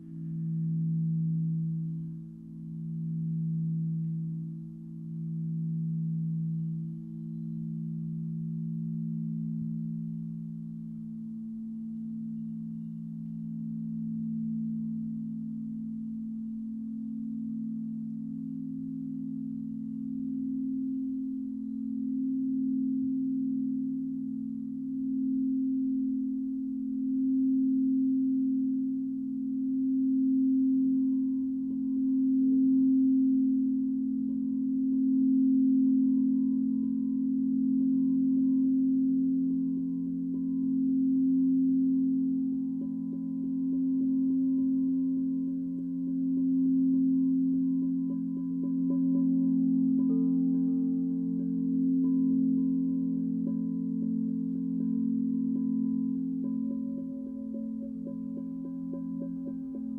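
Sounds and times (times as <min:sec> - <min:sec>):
singing bowls ringing: 0:00.0 - 0:59.9.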